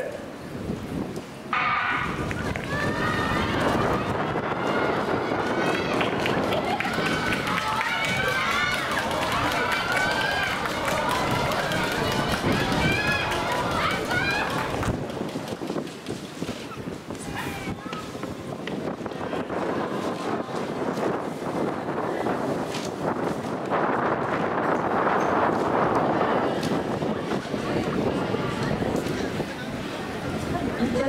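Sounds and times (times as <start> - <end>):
crowd shouting and cheering: 1.5 - 16.0, 17.2 - 31.0.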